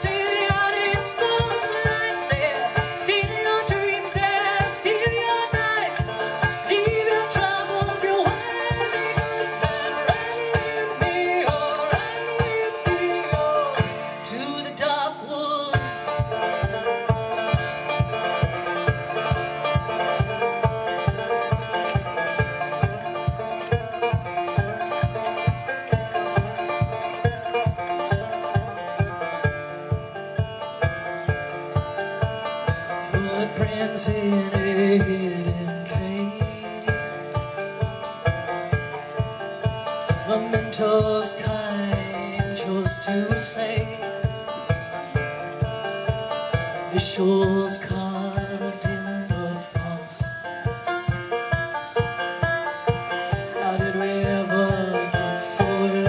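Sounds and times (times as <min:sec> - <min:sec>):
banjo fast picked notes: 0:00.0 - 0:56.0
low thumping beat: 0:15.8 - 0:56.0.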